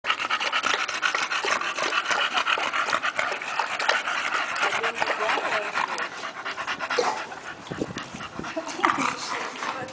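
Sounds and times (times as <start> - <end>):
dog lapping water: 0.0 - 9.9.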